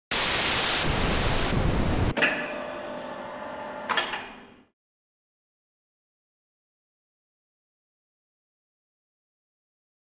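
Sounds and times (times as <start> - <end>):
burst of static-like noise: 0.1 - 2.2.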